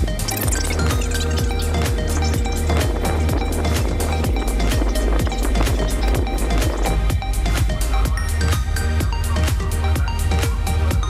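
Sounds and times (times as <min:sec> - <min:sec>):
electronic music with beat: 0:00.0 - 0:11.0
low kick drum: 0:00.5 - 0:11.0.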